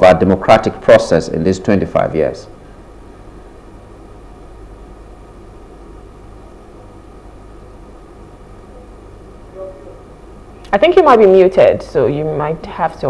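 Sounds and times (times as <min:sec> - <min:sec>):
faint hum: 0:00.0 - 0:13.0
steady low hiss: 0:00.0 - 0:13.0.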